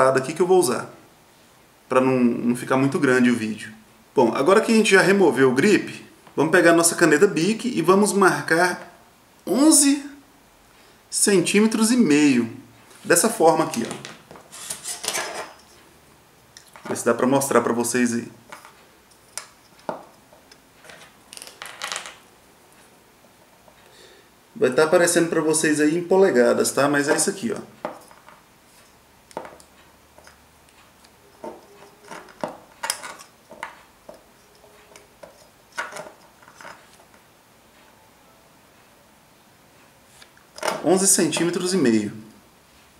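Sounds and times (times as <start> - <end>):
metal ruler scraping and clattering: 14.5 - 15.8.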